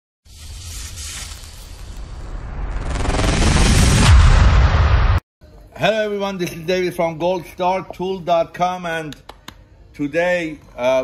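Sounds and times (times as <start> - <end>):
deep boom: 2.3 - 5.2.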